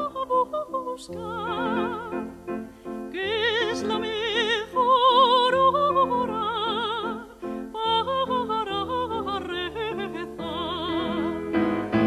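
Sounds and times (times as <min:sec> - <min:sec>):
soprano singing with vibrato: 0:00.0 - 0:11.9
piano accompaniment: 0:00.0 - 0:12.0.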